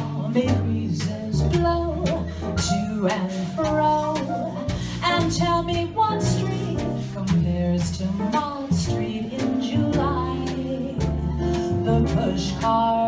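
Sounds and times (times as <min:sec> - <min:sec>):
drums keeping time: 0:00.0 - 0:13.0
piano: 0:00.0 - 0:13.0
upright bass walking: 0:00.0 - 0:13.0
woman singing: 0:00.0 - 0:13.0.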